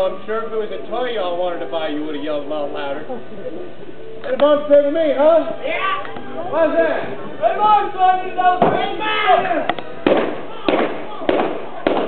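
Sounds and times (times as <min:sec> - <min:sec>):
blank gunshots with echo: 0:10.0 - 0:12.0.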